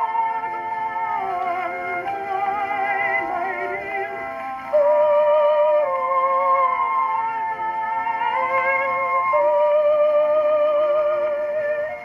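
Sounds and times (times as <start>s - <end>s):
phonograph accompaniment: 0.0s - 12.0s
woman singing with vibrato: 0.0s - 12.0s.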